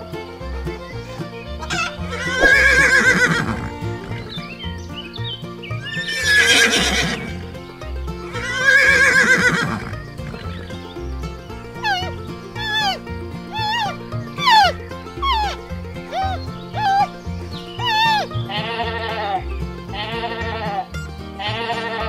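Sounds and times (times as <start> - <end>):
horse whinnying: 1.7 - 4.5, 5.7 - 7.6, 8.3 - 10.8, 11.8 - 17.1, 17.8 - 20.8.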